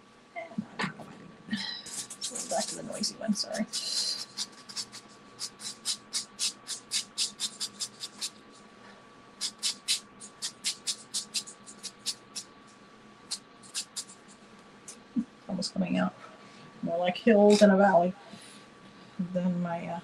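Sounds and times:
pastel stick scratching on paper: 0:01.9 - 0:08.4, 0:09.4 - 0:12.5, 0:13.3 - 0:14.4.

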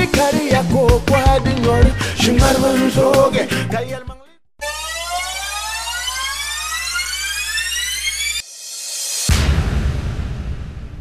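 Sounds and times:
music: 0:00.0 - 0:05.6, 0:07.2 - 0:10.3.

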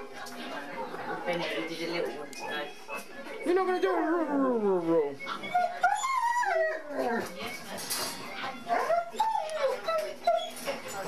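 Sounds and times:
dog whining: 0:03.4 - 0:07.7, 0:08.4 - 0:11.0.

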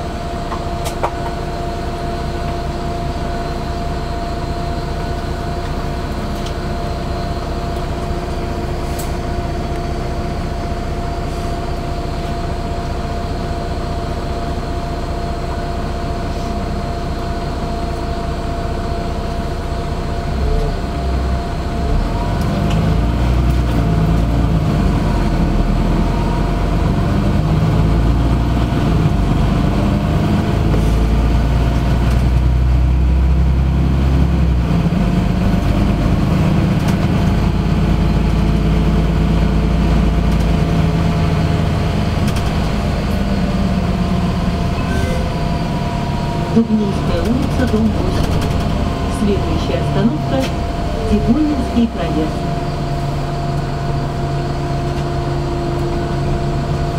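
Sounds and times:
steady high whine: 0:00.0 - 0:23.2, 0:23.8 - 0:56.9
bus engine and road rumble: 0:00.0 - 0:56.9
bus engine idling: 0:00.0 - 0:56.9.

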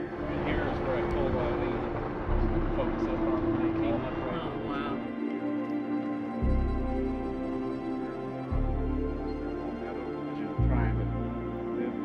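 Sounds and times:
wind rumbling on microphone: 0:00.0 - 0:07.6
held tone of background music: 0:00.0 - 0:12.0.

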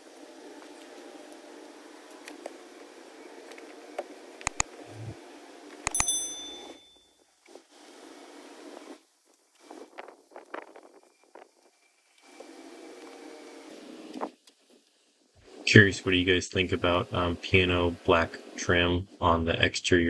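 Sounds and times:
quick clicks: 0:04.4 - 0:04.7, 0:05.8 - 0:06.2
steady low hum: 0:04.4 - 0:07.0
bright metallic ping: 0:05.9 - 0:07.1.

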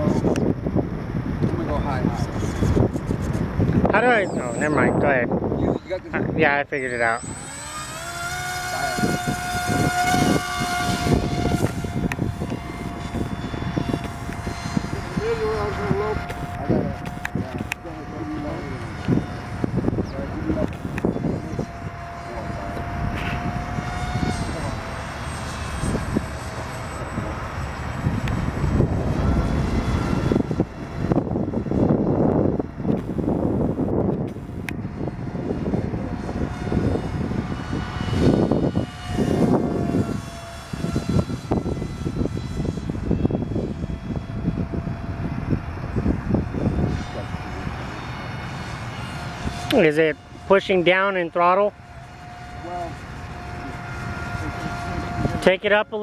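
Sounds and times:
low rumbling gusts: 0:00.0 - 0:56.0
model airplane motor whine: 0:00.0 - 0:56.0.

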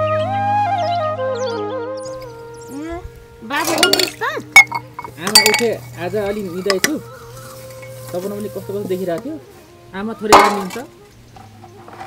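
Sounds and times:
steel dishes clinking: 0:03.6 - 0:07.0, 0:10.3 - 0:10.9.

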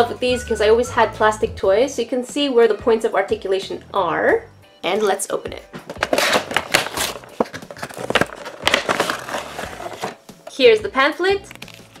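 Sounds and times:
plastic snapping: 0:05.8 - 0:10.2, 0:11.4 - 0:12.0
plastic packaging crinkling: 0:06.0 - 0:10.2, 0:11.4 - 0:12.0.

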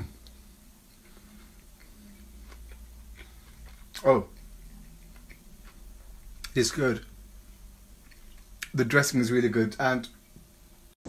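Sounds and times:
crunchy chewing: 0:00.0 - 0:07.1, 0:08.0 - 0:08.8
low steady hum: 0:00.0 - 0:11.0.

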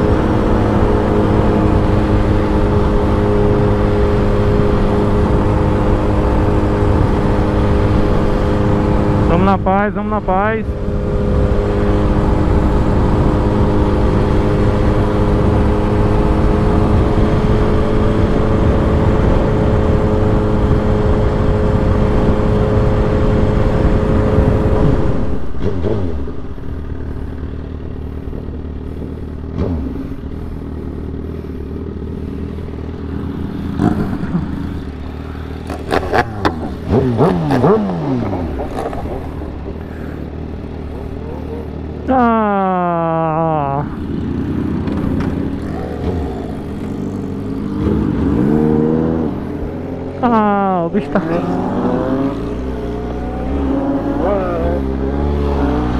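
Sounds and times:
motorcycle engine: 0:00.0 - 0:55.9
rushing wind noise: 0:10.7 - 0:26.8
engine sounds sweeping down in pitch: 0:33.4 - 0:55.9.

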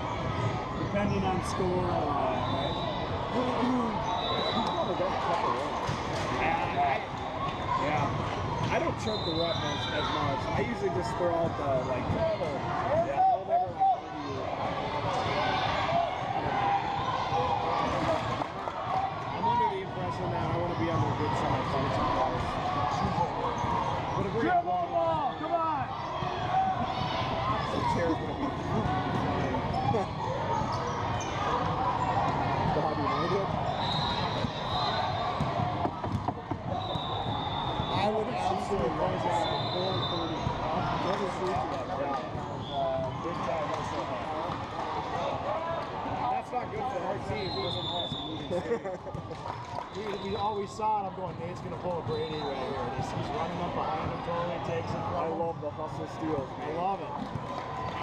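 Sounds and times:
hubbub of voices: 0:00.0 - 0:58.0.

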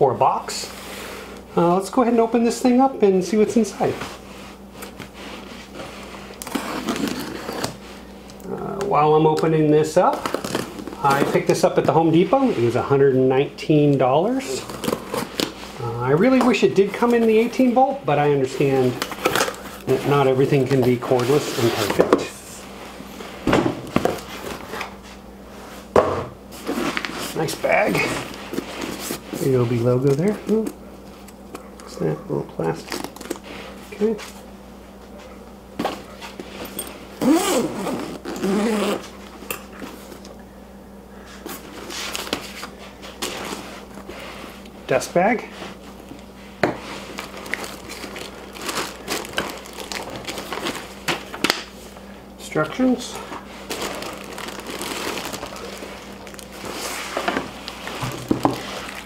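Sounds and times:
plastic packaging crinkling: 0:10.0 - 0:11.6, 0:18.5 - 0:22.0, 0:46.9 - 0:51.4, 0:53.2 - 0:59.0
cardboard and fabric rustling: 0:14.3 - 0:22.4, 0:26.5 - 0:30.7, 0:46.8 - 0:51.3, 0:53.2 - 0:59.0.

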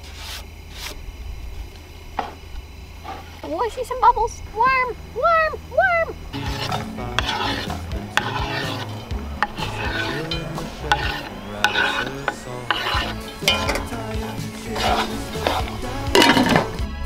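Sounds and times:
vegetables sizzling in oil: 0:06.3 - 0:16.9
knife and board knocking: 0:06.4 - 0:16.8
knife scraping cutting board: 0:06.4 - 0:16.8.

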